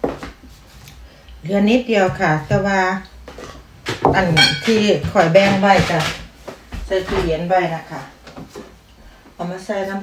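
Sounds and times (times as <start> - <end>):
woman talking: 1.4 - 3.1, 4.0 - 8.2, 9.4 - 10.0.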